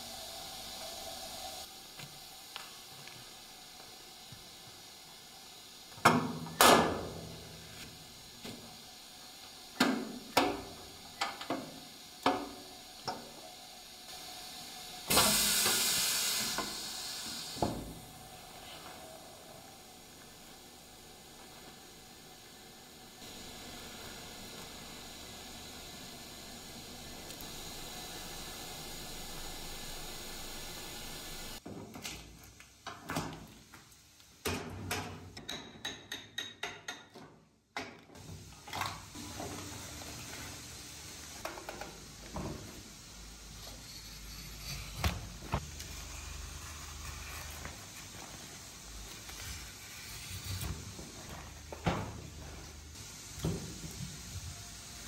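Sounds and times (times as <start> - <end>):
hiss of air: 0.0 - 31.6, 38.2 - 55.0.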